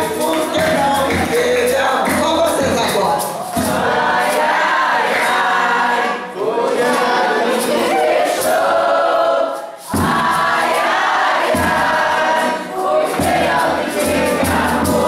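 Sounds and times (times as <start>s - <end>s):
shaker: 0.0s - 5.6s, 7.4s - 15.0s
group singing folk song: 0.0s - 15.0s.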